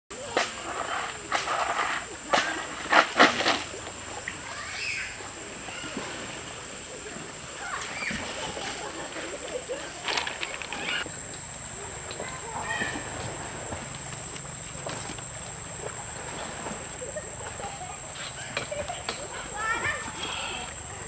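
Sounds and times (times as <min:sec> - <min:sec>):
water splashing and sloshing: 0:00.2 - 0:11.1, 0:11.7 - 0:21.0.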